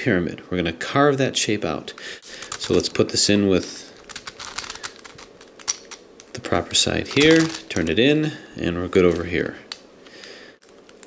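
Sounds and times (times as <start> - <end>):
plastic puzzle clicking and rattling: 2.4 - 3.0, 4.0 - 6.3, 7.0 - 7.9.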